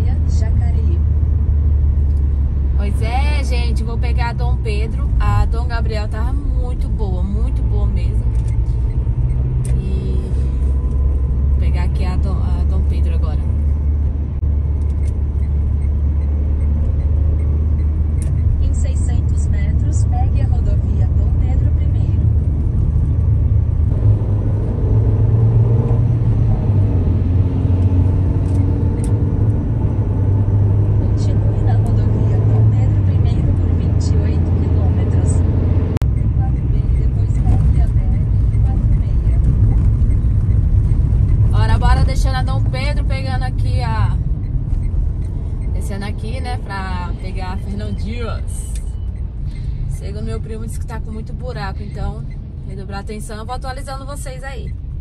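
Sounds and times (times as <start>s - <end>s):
car engine and tyre drone: 0.0s - 55.0s.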